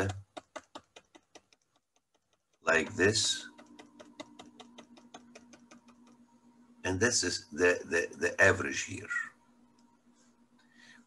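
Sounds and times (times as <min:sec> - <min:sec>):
faint electrical hum: 0:00.0 - 0:11.0.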